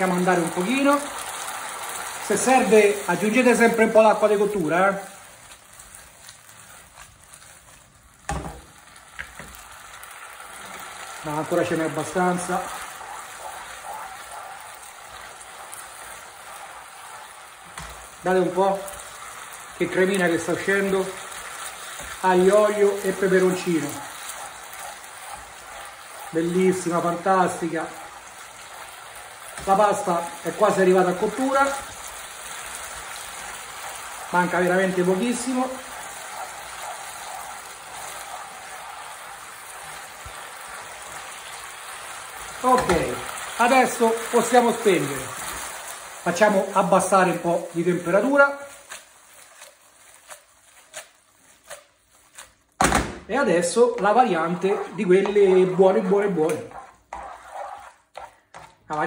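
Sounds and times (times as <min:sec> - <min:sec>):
pasta sizzling in a frying pan: 0:00.0 - 0:59.0.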